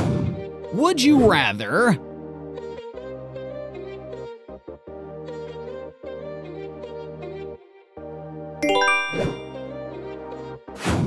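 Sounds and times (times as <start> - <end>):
background music: 0.0 - 10.0
descending bell-like chime: 8.6 - 9.8.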